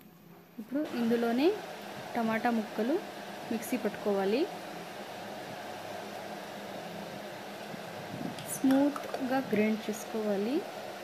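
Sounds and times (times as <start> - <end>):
steady fan hiss: 0.0 - 11.0.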